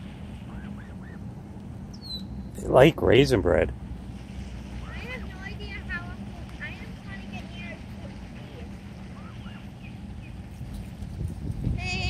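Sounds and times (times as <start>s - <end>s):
gosling peeping: 0.4s - 2.6s, 9.0s - 10.5s.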